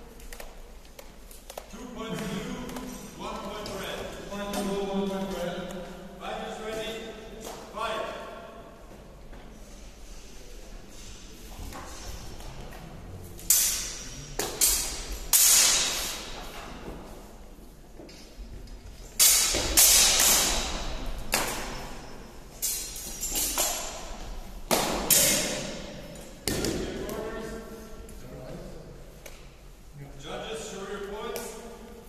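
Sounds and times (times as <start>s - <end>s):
sword blades clashing: 13.4s - 16.4s, 19.2s - 24.1s, 24.7s - 25.9s.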